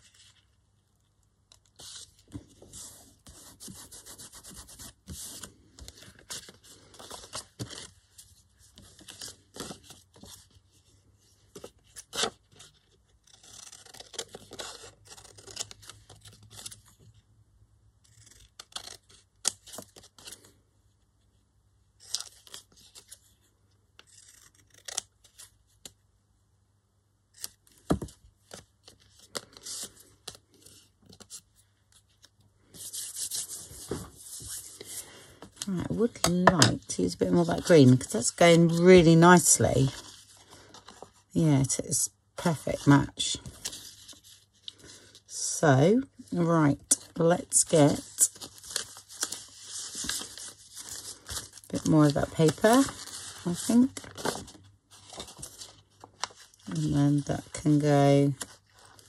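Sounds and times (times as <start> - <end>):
paper tearing: 13.2 - 16.1, 24.0 - 25.4
paper rustling: 47.8 - 57.6.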